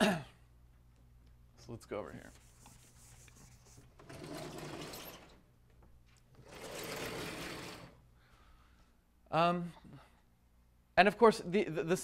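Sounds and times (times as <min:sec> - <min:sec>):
rubbing on a blackboard: 0:02.2 - 0:03.9.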